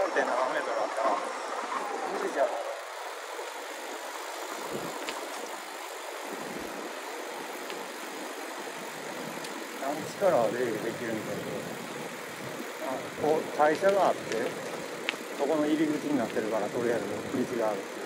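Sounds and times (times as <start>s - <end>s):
bicycle tyre noise: 0.0s - 18.0s
wind on camera: 3.9s - 17.7s
faint clicks: 5.0s - 5.5s, 9.4s - 9.6s, 13.7s - 15.4s.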